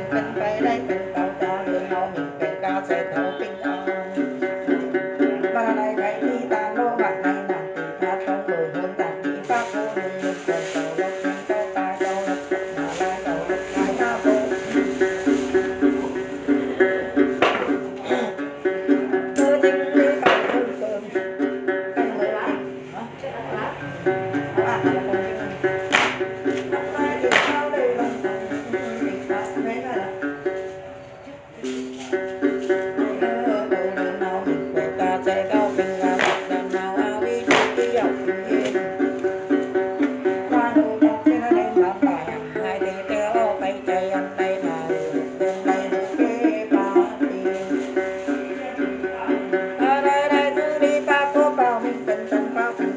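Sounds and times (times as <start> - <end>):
ritual singing: 0.0 - 30.7, 31.6 - 52.9
plucked lute repeating pattern: 0.0 - 52.9.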